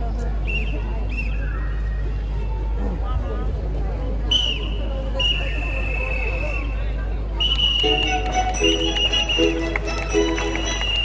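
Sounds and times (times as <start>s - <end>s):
murmur of crowd: 0.0s - 11.0s
high thin whistling tone: 4.4s - 9.8s, 10.5s - 11.0s.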